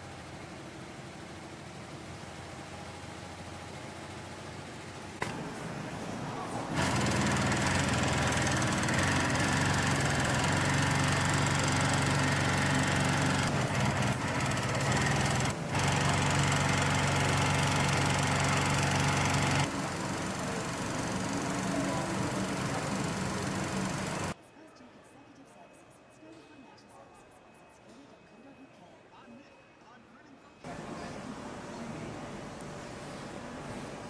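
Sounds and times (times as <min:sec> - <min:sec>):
sewing machine motor hum: 0:06.7 - 0:24.4.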